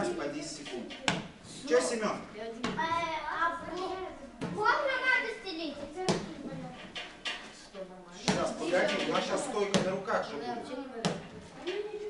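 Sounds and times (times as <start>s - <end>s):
children talking: 0.0s - 12.0s
sharp knocks: 0.5s - 1.4s.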